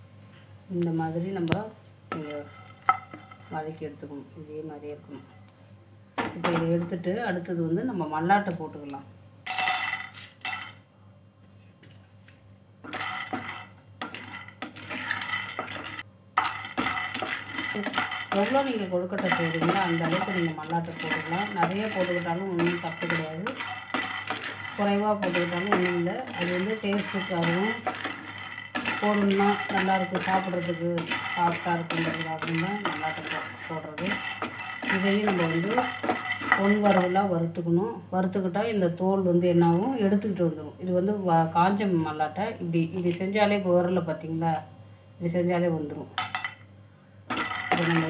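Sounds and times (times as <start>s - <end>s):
peanuts clattering into frying pan: 2.1s - 3.6s, 9.5s - 10.8s, 12.8s - 37.4s, 46.2s - 46.6s, 47.3s - 48.0s
person speaking: 17.6s - 37.6s.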